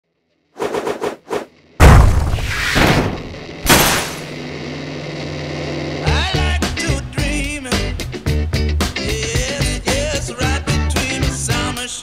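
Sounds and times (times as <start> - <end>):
heavy boom: 1.8 - 4.2.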